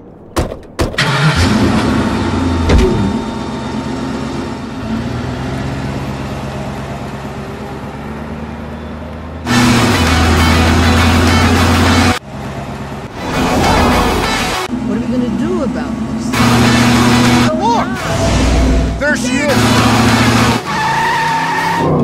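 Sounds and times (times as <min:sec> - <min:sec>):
car engine starting and running: 0:00.0 - 0:22.0.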